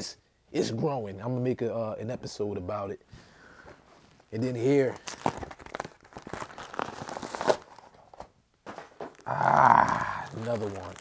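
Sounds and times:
plastic packaging crinkling: 0:04.3 - 0:11.0.

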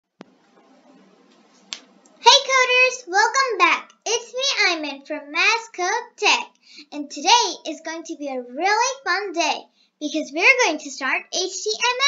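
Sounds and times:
faint room hiss: 0:00.1 - 0:12.0.

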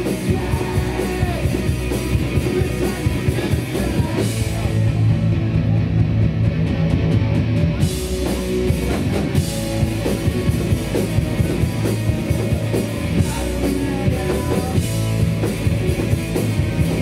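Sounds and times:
distorted electric guitar: 0:00.0 - 0:17.0
pounding drum kit: 0:00.0 - 0:17.0.

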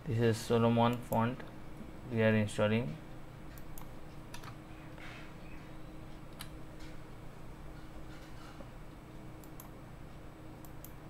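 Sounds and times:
computer keyboard keystrokes: 0:03.5 - 0:04.6.

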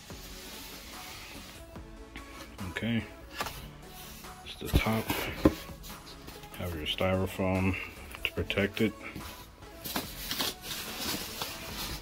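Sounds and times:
styrofoam rubbing against cardboard: 0:00.0 - 0:01.7, 0:10.2 - 0:12.0.

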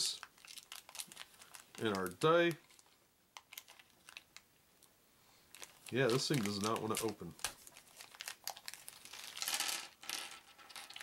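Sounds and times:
plastic bag crinkling: 0:00.0 - 0:04.4, 0:05.5 - 0:11.0
plastic bag tearing: 0:00.3 - 0:02.8, 0:05.5 - 0:09.5.

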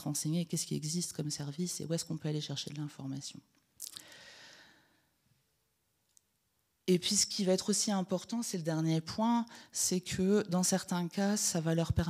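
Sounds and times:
woman speaking: 0:00.0 - 0:03.5, 0:06.9 - 0:12.0.

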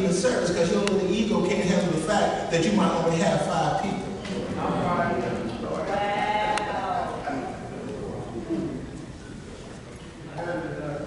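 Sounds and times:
man speaking into a microphone: 0:00.0 - 0:05.9.

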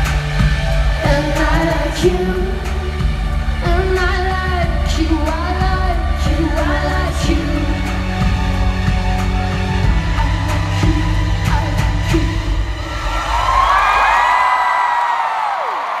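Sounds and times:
live pop song: 0:00.0 - 0:16.0
crowd whooping and screaming: 0:12.8 - 0:16.0.

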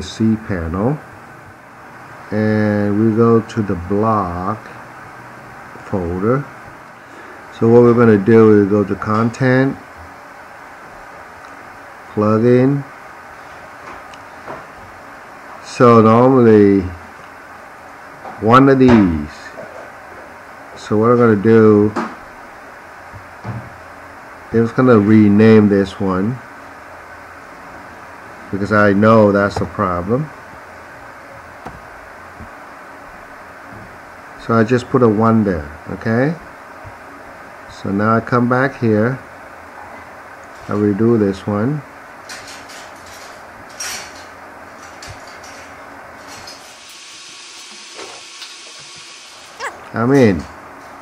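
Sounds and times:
man speaking: 0:00.0 - 0:01.0, 0:02.3 - 0:04.7, 0:28.5 - 0:30.4, 0:34.4 - 0:36.4, 0:49.9 - 0:50.5
room tone hiss: 0:00.0 - 0:51.0
person speaking: 0:28.5 - 0:30.4.

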